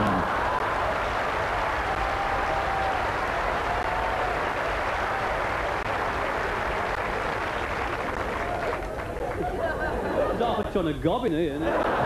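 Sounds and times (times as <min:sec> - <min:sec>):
audience applauding: 0:00.0 - 0:10.1.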